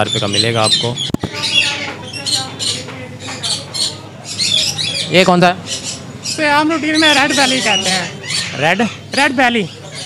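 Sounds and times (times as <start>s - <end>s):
parrots squawking: 0.0s - 10.0s.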